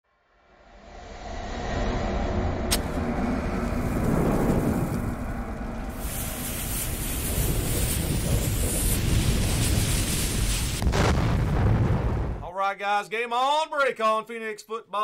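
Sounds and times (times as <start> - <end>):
deep steady rumble: 0.7 - 12.4
loud fire hiss: 2.7 - 12.3.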